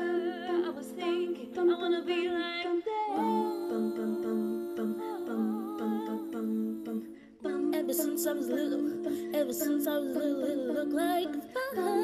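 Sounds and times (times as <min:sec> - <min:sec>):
vocal ensemble humming harmonies: 0:00.0 - 0:12.0.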